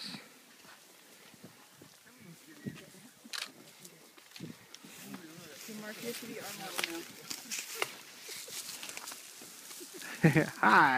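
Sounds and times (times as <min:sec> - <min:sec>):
footsteps on dry grass: 0:00.4 - 0:10.4
soft laugh: 0:09.7 - 0:10.8.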